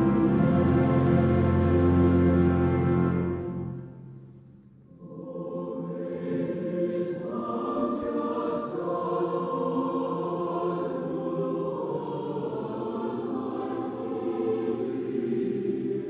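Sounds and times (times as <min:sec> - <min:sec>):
choir singing a hymn: 0:00.0 - 0:03.9, 0:04.9 - 0:16.0.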